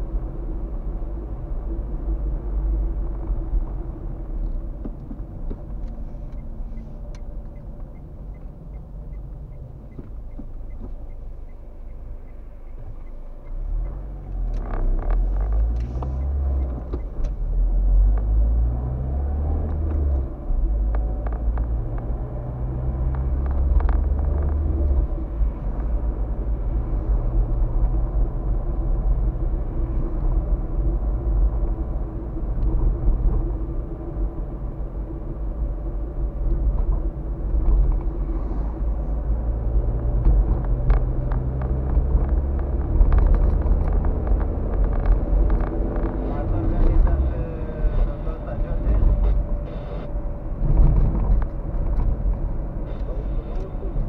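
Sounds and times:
road noise: 0.0s - 54.0s
car engine accelerating: 9.9s - 54.0s.

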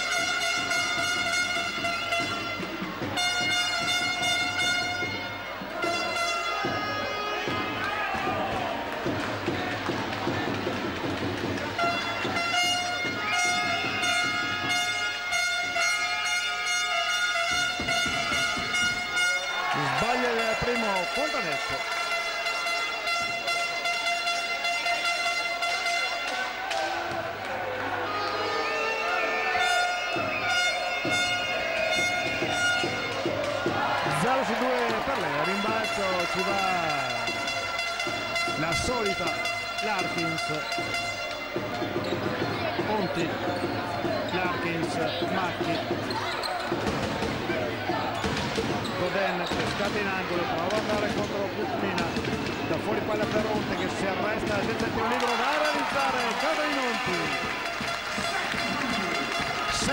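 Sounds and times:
organ-like music over loudspeakers: 0.0s - 26.7s, 28.3s - 47.2s, 48.9s - 59.9s
crowd voices: 0.0s - 59.9s.

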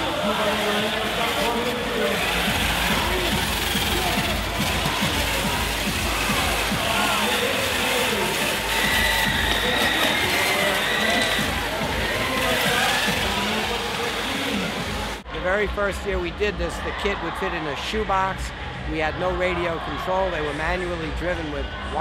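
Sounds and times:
indistinct crowd voices: 0.0s - 22.0s
music: 0.0s - 22.0s.

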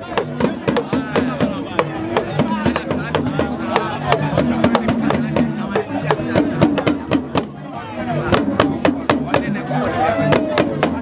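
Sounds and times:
crowd voices: 0.0s - 11.0s
hand drums driving rhythm: 0.0s - 11.0s.

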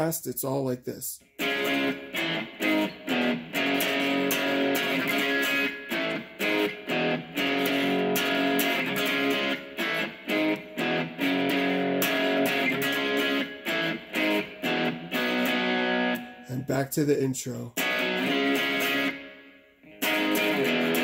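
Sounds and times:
electric guitar power chords: 1.4s - 16.7s, 17.8s - 21.0s.

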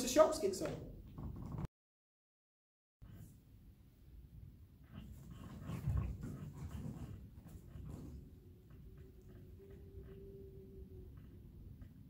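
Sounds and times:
faint steady whine: 3.1s - 12.0s
rustling: 4.8s - 10.2s.

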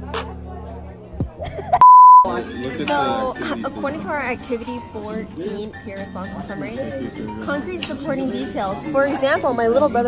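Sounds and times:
electronic censor bleep: 1.8s - 2.3s.

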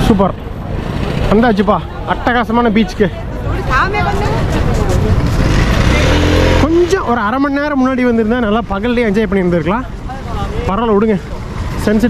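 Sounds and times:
loud rushing noise: 4.1s - 7.0s.

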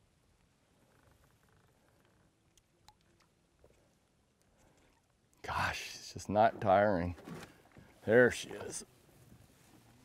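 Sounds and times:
faint ticks: 0.3s - 5.4s.

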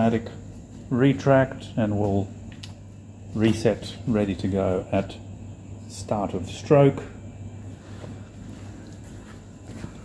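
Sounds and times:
steady low hum: 0.0s - 10.0s
faint footsteps: 7.6s - 10.0s.

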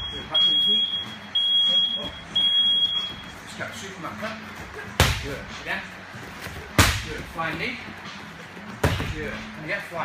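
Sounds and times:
high-pitched electronic beeps: 0.0s - 3.4s.

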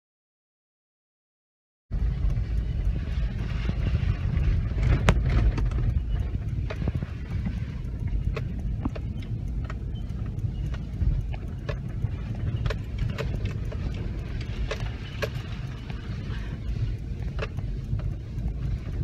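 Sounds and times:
engine and road rumble: 1.9s - 19.0s
sharp clicks and knocks: 2.0s - 19.0s.

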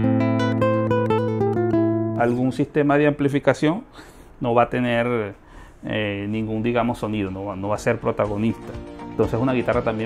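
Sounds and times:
nylon-string guitar notes: 0.0s - 2.8s.

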